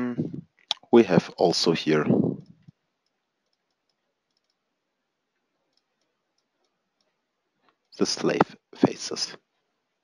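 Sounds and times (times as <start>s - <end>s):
person speaking: 0.0s - 2.7s, 7.9s - 9.4s
computer mouse clicks: 2.4s - 4.7s, 5.6s - 8.5s.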